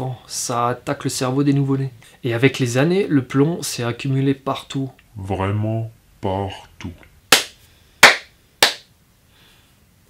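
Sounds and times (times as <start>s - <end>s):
slow hand claps: 7.3s - 8.9s.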